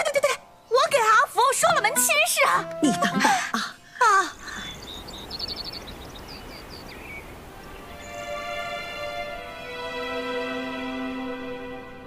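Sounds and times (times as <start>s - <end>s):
small birds chirping: 0.0s - 2.6s, 3.2s - 9.4s
soft sustained music notes: 0.0s - 3.6s, 7.6s - 12.0s
low steady background hiss: 0.0s - 12.0s.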